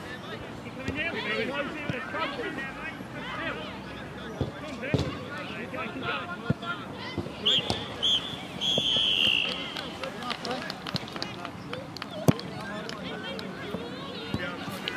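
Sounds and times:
distant players shouting: 0:00.8 - 0:09.9
referee's whistle blasts: 0:07.4 - 0:09.6.

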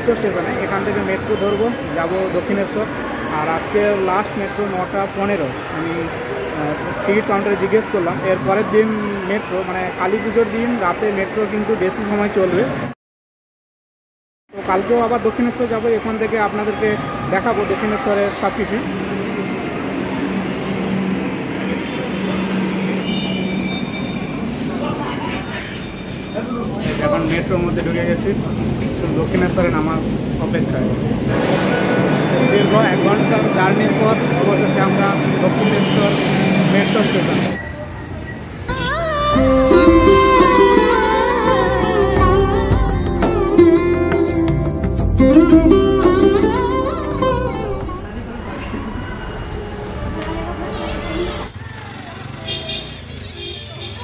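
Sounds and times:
metro train humming: 0:18.6 - 0:25.7, 0:27.5 - 0:51.5.

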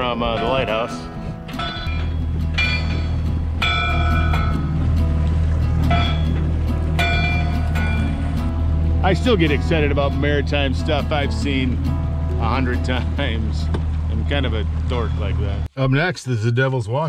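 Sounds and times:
bell buoy clanging: 0:00.0 - 0:15.7
steady low rumble: 0:00.0 - 0:15.7.

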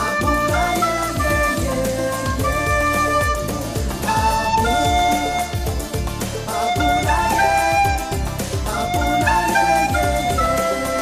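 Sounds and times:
pop backing track with drums: 0:00.0 - 0:11.0
recorder playing slow melody: 0:00.0 - 0:11.0.

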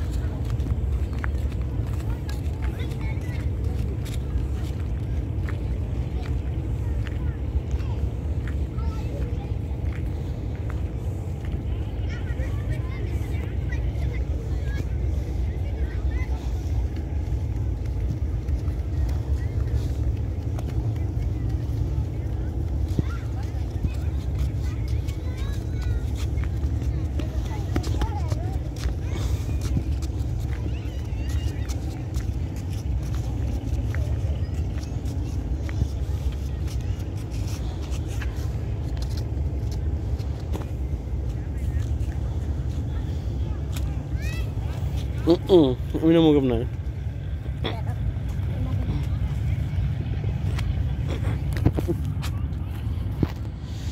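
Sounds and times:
faint distant voices: 0:00.0 - 0:53.9
low rumble: 0:00.0 - 0:53.9.

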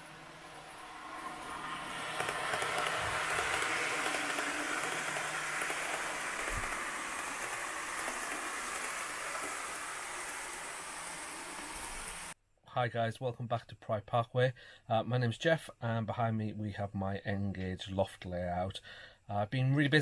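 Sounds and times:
model train rolling: 0:00.0 - 0:12.4.

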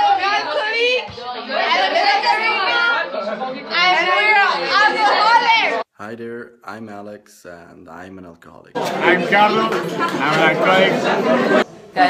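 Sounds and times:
young people talking: 0:00.0 - 0:05.8, 0:08.8 - 0:12.0.

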